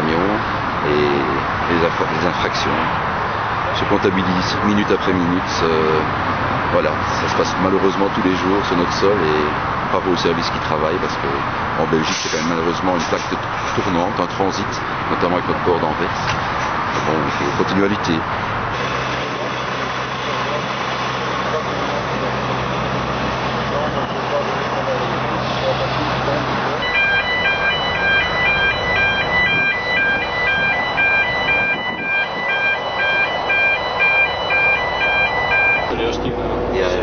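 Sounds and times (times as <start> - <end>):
engine hum: 0.0 - 37.0
two-tone electronic warning signal: 26.8 - 36.0.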